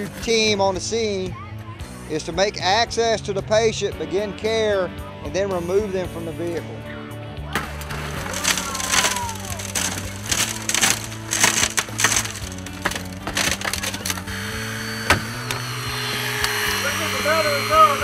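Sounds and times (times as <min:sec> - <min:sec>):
hand saw rasping through glass: 0:07.8 - 0:15.7.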